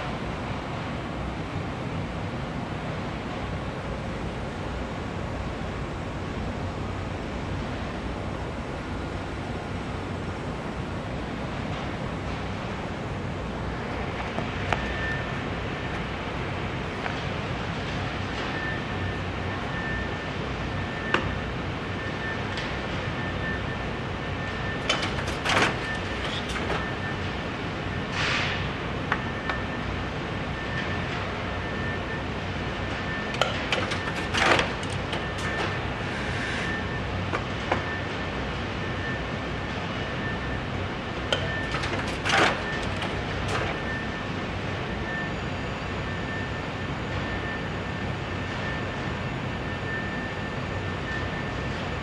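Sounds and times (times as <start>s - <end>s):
factory rumble and hiss: 0.0s - 52.0s
thin constant whine: 0.0s - 52.0s
binding machine humming: 13.4s - 47.6s.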